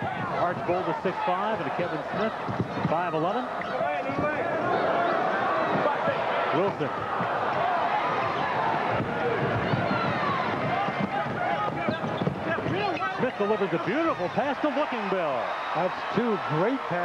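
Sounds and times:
arena crowd noise: 0:00.0 - 0:17.0.

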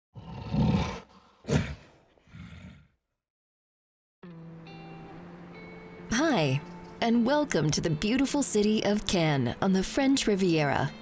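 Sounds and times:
gorilla roaring: 0:00.2 - 0:03.0.

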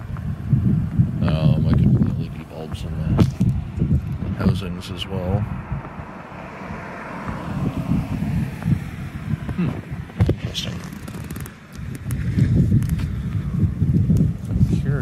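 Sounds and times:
microphone handling noise: 0:00.0 - 0:04.7, 0:07.2 - 0:15.0
wind rumble: 0:00.0 - 0:15.0
car driving past: 0:04.9 - 0:10.4.

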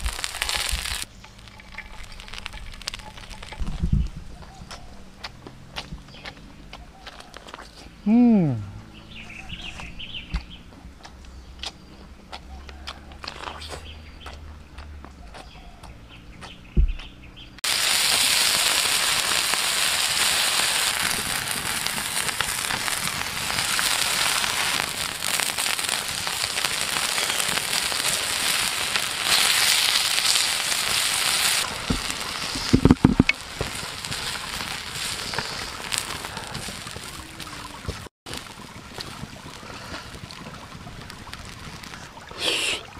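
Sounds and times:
oil sizzling and crackling: 0:00.0 - 0:07.8, 0:17.5 - 0:42.9.

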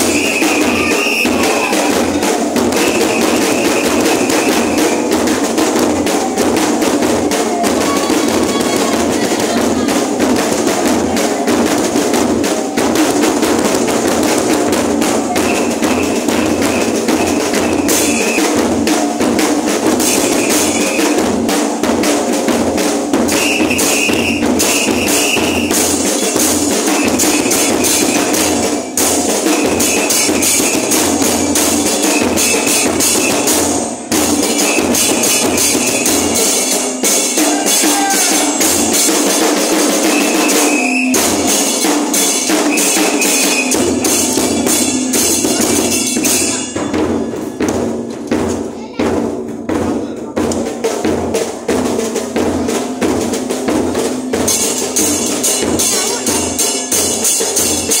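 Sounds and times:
bass drums with cymbals: 0:00.0 - 0:58.0.

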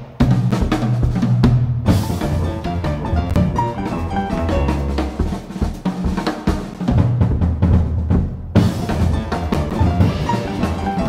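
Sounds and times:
jazz band playing: 0:00.0 - 0:11.0
snare and bass drum strokes: 0:00.0 - 0:11.0.

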